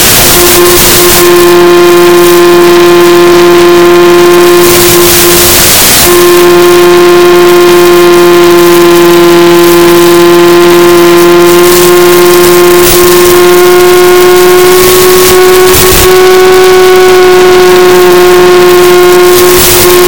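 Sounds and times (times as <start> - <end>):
electric motor and propeller whining: 0.0 - 20.0.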